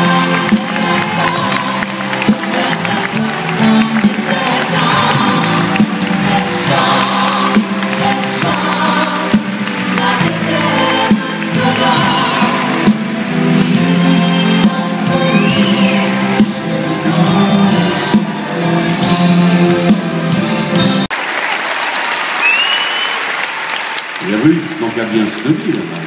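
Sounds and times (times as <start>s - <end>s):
live pop band with piano: 0.0s - 21.1s.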